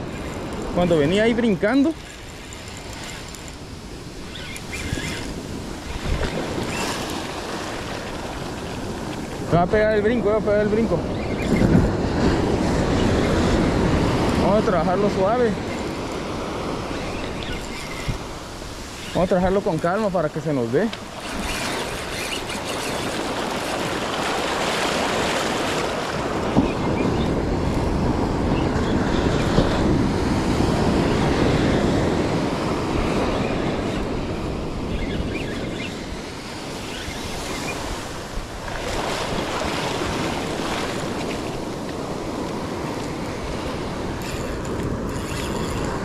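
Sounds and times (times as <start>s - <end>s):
wind buffeting microphone: 0.0s - 46.0s
surf washing over beach: 3.7s - 17.0s, 18.1s - 45.1s.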